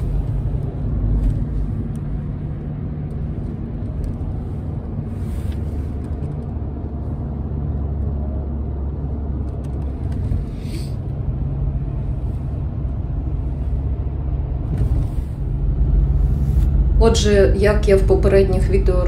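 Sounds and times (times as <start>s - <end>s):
car engine and tyre rumble: 0.0s - 19.0s.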